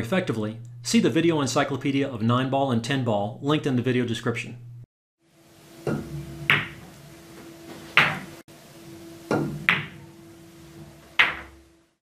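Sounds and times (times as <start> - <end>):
cue tip striking cue ball: 5.8 - 6.9, 7.9 - 8.3, 9.3 - 10.0, 11.2 - 11.6
pool balls clicking together: 5.8 - 6.9, 9.3 - 10.0, 11.1 - 11.6.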